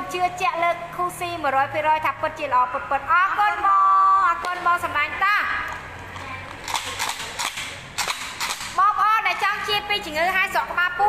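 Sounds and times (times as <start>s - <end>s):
woman speaking: 0.0s - 5.7s, 8.8s - 11.0s.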